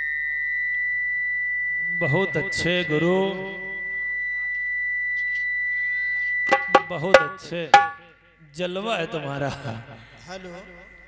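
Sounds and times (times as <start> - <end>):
high-pitched electronic tone: 1.6 - 8.2
man's voice over pa system: 2.0 - 3.8, 6.7 - 7.8.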